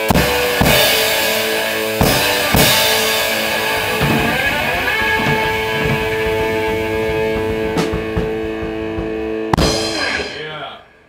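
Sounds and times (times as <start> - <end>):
electric guitar sustained notes: 0.0 - 10.6
light drum kit playing: 0.0 - 10.7.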